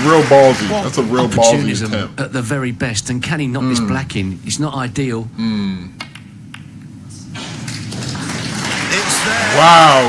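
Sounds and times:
snooker balls clicking: 0:06.0 - 0:06.9.

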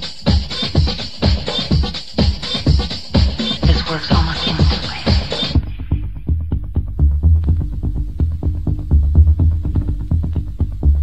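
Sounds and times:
fast percussion hits: 0:00.0 - 0:06.0
pulsing bass line: 0:02.7 - 0:11.0.

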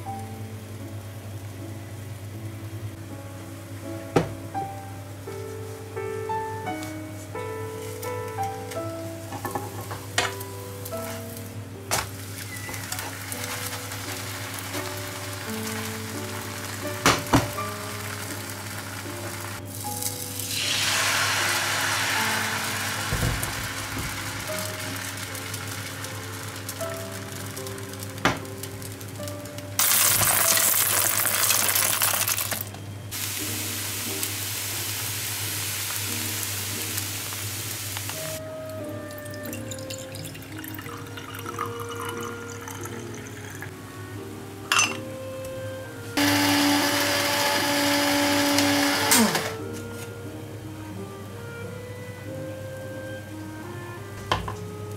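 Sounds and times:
batter sizzling in a frying pan: 0:09.0 - 0:39.6.

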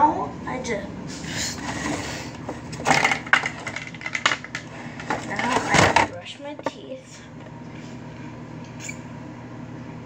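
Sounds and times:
small hard objects clattering: 0:02.8 - 0:05.9.

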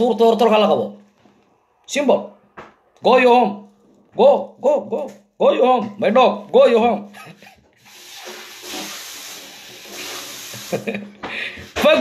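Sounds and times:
steady hiss: 0:07.8 - 0:11.0.

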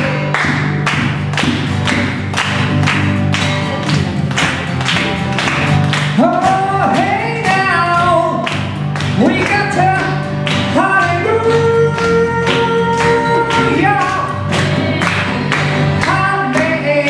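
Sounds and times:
person singing: 0:00.0 - 0:00.7, 0:06.2 - 0:08.5, 0:09.2 - 0:17.0
acoustic guitar strumming: 0:00.0 - 0:17.0.

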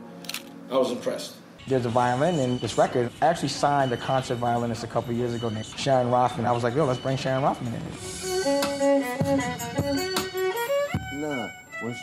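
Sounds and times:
solo violin bowed: 0:07.6 - 0:12.0.

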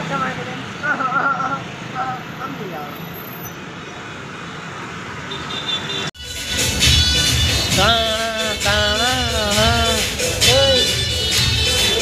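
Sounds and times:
men talking: 0:00.0 - 0:03.0
low hum of traffic: 0:00.0 - 0:12.0.

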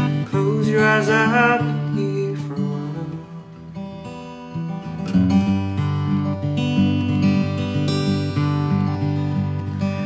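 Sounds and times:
person singing: 0:00.0 - 0:03.6
fingerpicked acoustic guitar: 0:00.0 - 0:10.0.

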